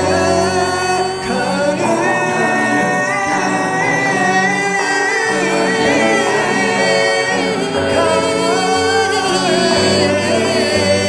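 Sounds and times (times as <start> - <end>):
voices singing a slow chant: 0.0 - 11.0.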